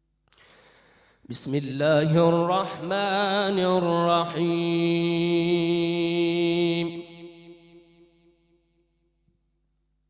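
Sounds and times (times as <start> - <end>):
echo of voice: 0.4 - 8.4
man reciting melodically: 1.2 - 7.7.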